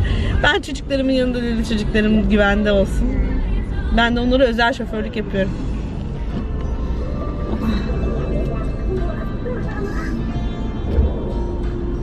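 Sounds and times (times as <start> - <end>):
car interior rumble: 0.0 - 12.0
music: 0.0 - 12.0.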